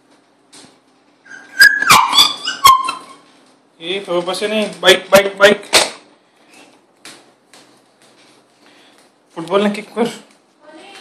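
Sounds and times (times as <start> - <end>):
toddler squealing: 1.3 - 3.2.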